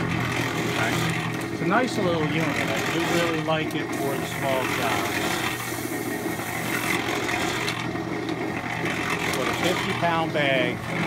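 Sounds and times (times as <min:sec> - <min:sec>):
cement mixer motor hum: 0:00.0 - 0:11.0
hose nozzle spraying water: 0:02.6 - 0:07.9.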